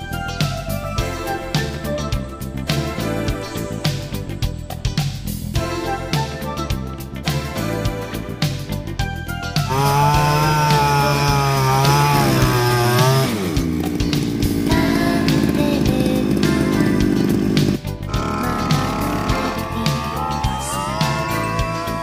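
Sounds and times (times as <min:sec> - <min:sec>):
two-stroke engine running: 0:09.7 - 0:22.0.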